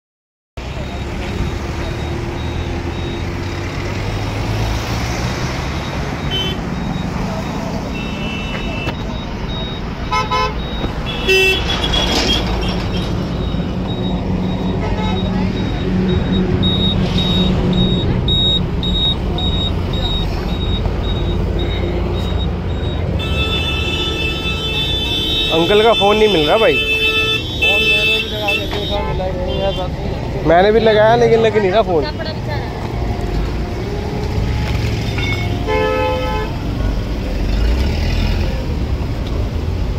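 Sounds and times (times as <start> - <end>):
vehicle engines idling: 0.6 - 39.9
high repeating beep: 0.7 - 3.6, 5.8 - 11.3, 12.6 - 24.1
car horns honking: 5.0 - 36.8.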